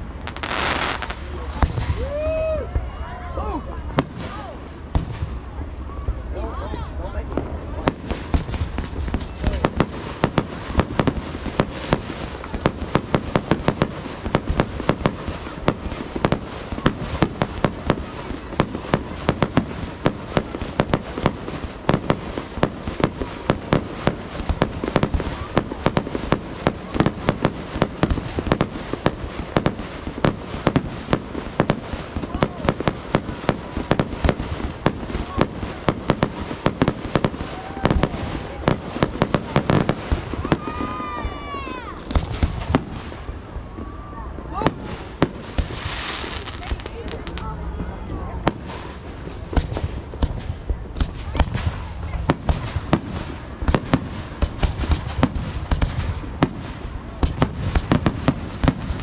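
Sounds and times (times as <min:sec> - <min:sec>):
fireworks bangs and crackling: 0:00.0 - 0:59.0.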